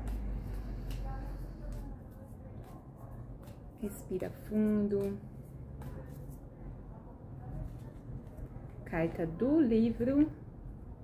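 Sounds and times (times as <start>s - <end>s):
cards being shuffled: 0.0s - 6.4s
low steady hum: 0.0s - 11.0s.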